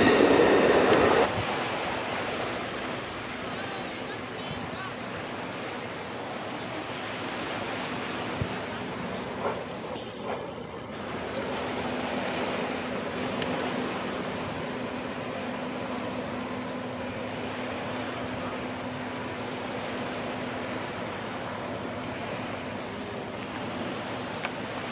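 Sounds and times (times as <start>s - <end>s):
train wheels rushing on rail: 0.0s - 3.1s, 6.2s - 24.9s
locomotive low hum: 0.0s - 24.9s.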